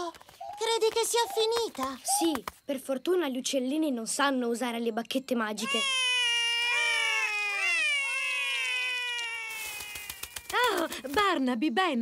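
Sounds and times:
cartoon voices wailing: 5.6s - 10.9s.

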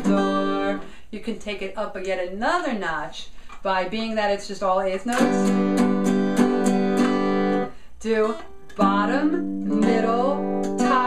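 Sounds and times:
acoustic guitar strumming: 0.0s - 1.0s, 5.1s - 11.0s.

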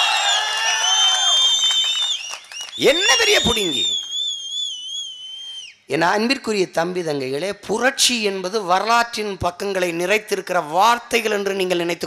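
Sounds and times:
long high whistle: 0.0s - 5.9s.

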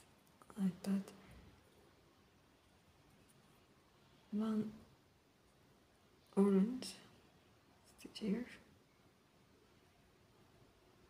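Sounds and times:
woman speaking softly: 0.4s - 1.3s, 4.3s - 4.9s, 6.3s - 7.2s, 7.8s - 8.7s.

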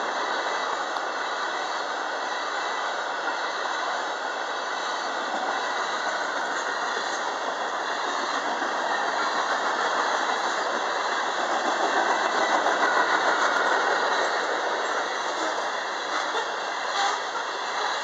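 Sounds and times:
train wheels rattling on rails: 0.0s - 18.0s.

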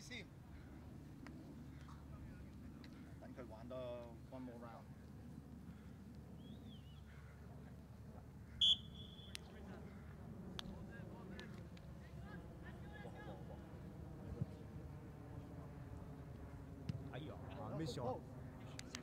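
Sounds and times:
distant players shouting: 8.5s - 10.2s
referee's whistle blast: 8.6s - 9.4s.

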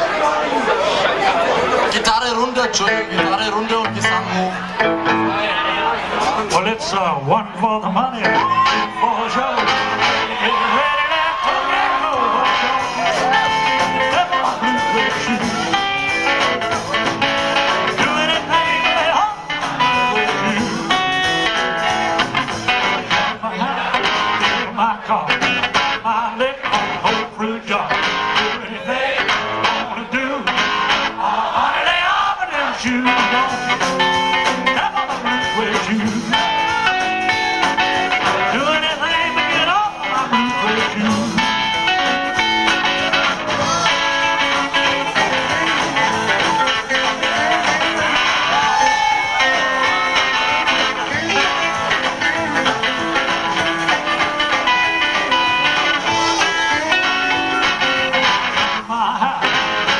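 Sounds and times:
upright bass: 0.0s - 31.5s, 32.6s - 59.9s
drums: 0.0s - 59.9s
electric guitar: 0.6s - 31.3s, 32.6s - 59.9s.

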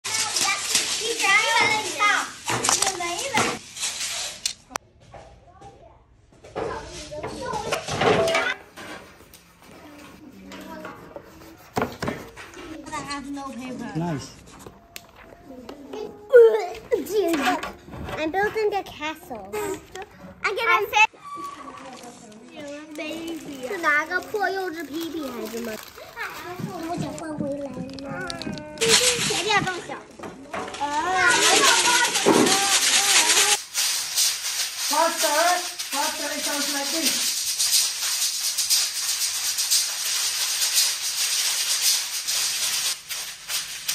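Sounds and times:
young children chattering: 14.7s - 33.6s.

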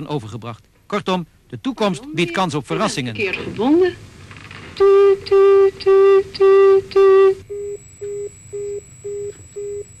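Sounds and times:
faint high whine: 2.2s - 10.0s
telephone line tone beeping: 6.5s - 10.0s.

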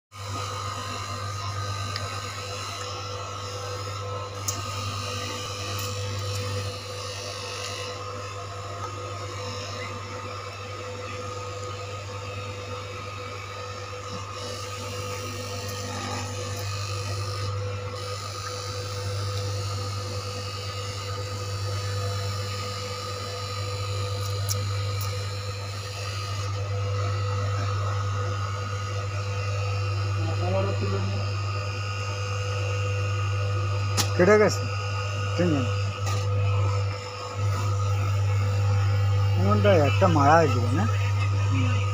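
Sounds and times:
cloth cutting machine humming: 0.1s - 41.9s.

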